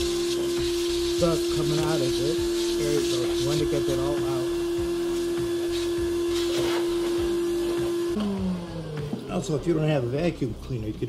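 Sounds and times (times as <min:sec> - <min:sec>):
hiss of blown air: 0:00.0 - 0:04.1
vacuum cleaner motor running: 0:00.0 - 0:10.0.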